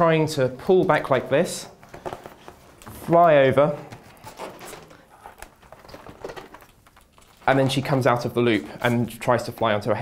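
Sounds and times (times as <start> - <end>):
clicks and rustling of handling: 0.9 - 9.0.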